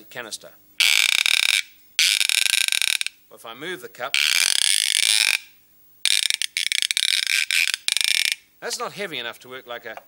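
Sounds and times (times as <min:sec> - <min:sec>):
string squealing on wooden dowel: 0:00.8 - 0:03.2, 0:04.1 - 0:08.5.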